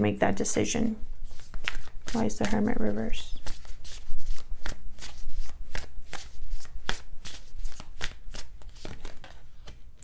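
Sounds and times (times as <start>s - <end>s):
cards being shuffled: 1.2s - 10.0s.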